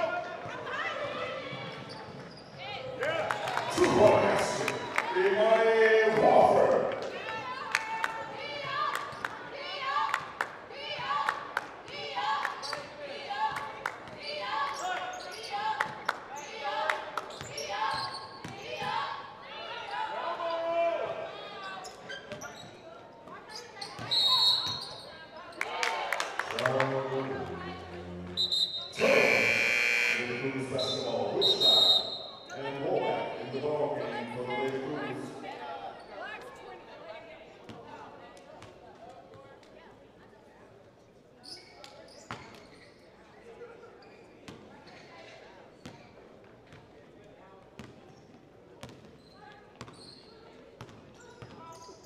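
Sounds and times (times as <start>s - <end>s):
voices: 23.3s - 38.5s
referee whistle: 24.1s - 24.9s, 28.4s - 32.5s.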